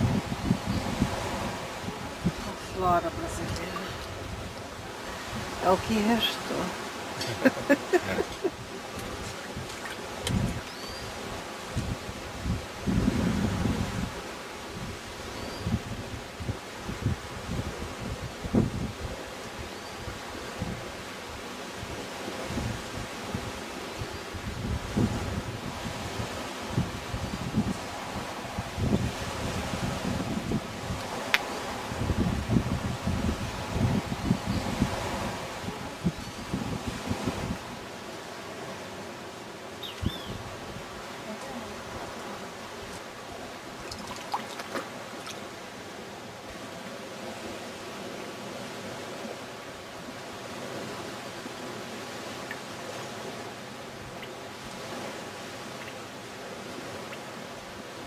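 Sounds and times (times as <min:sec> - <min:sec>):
leaves rustling: 0:00.0 - 0:19.7
wind buffeting microphone: 0:00.0 - 0:37.9
steady outdoor hiss: 0:00.0 - 0:58.0.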